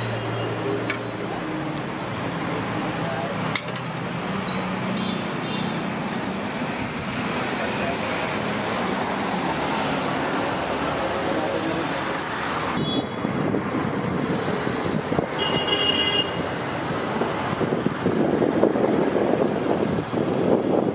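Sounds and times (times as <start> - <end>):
road traffic noise: 0.0 - 20.9.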